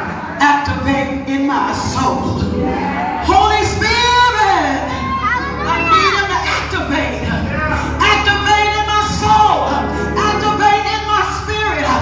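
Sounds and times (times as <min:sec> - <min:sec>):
low backing music: 0:00.0 - 0:12.0
woman preaching in chanting style: 0:03.2 - 0:07.3.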